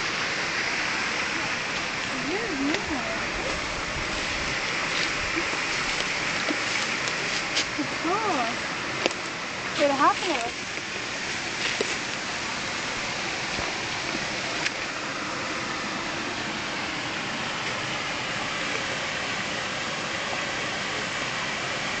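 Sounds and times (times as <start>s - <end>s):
water rushing over stones: 0.0s - 22.0s.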